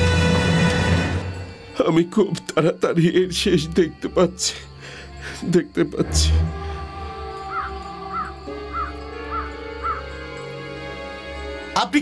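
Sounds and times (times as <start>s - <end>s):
background music of sustained tones: 0.0s - 12.0s
bird calling: 6.5s - 10.6s.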